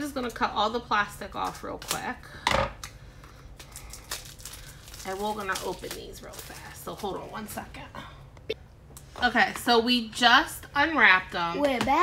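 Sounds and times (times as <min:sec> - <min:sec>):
rustling of plastic wrapping: 0:03.5 - 0:07.8.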